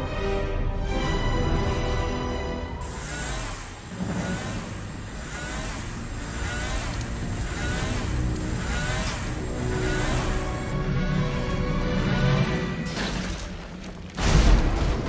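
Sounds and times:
film music: 0.0s - 15.0s
short rising whine: 2.8s - 10.8s.

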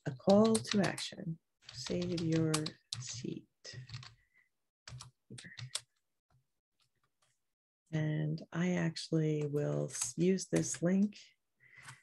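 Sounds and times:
typing on computer keyboard: 0.2s - 1.0s, 1.7s - 3.2s, 3.8s - 4.2s, 4.9s - 6.0s.

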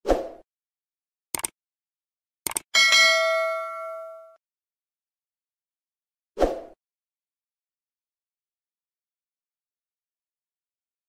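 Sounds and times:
notification bell chime: 2.8s - 4.4s.

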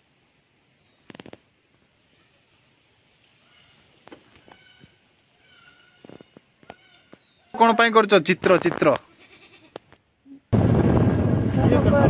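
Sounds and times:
faint thin animal cry: 9.1s - 10.5s.

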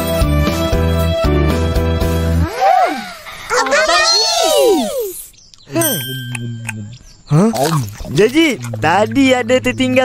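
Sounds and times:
cartoon children crying out: 2.4s - 5.2s
cartoon voice: 2.4s - 5.2s.

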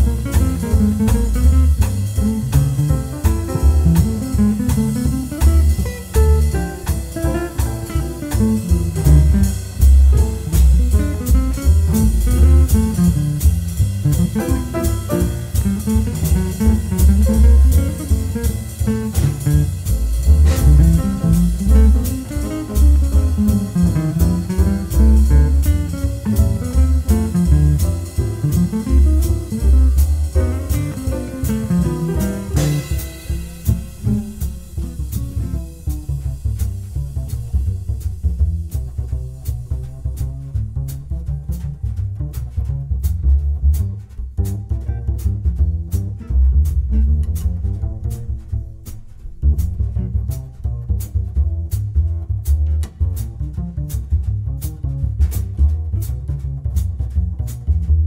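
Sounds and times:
drum kit cymbal beat: 0.0s - 58.0s
jazz guitar: 0.0s - 58.0s
upright bass: 0.0s - 58.0s.

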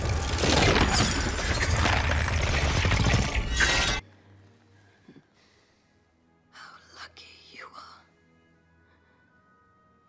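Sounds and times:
soft background music: 2.4s - 10.0s
woman whispering: 6.5s - 8.2s.

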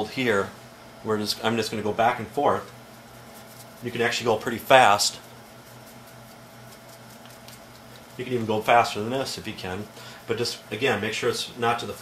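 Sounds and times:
low steady hum: 0.0s - 12.0s
hands patting skin: 2.7s - 8.8s
skin and sheet rustling: 2.8s - 9.6s.

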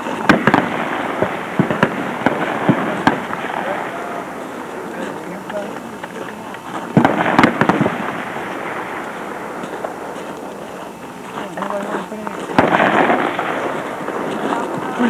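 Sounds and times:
distant gunfire: 0.0s - 15.0s
rifle shots: 0.0s - 15.0s.

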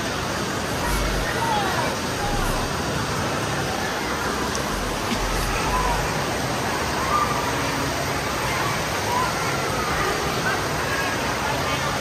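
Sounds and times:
echoing indoor hubbub: 0.0s - 12.0s
distant voices calling out: 0.4s - 8.2s.

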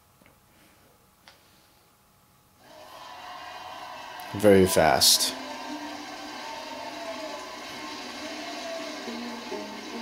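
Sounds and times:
held tones from tv: 2.7s - 10.0s.

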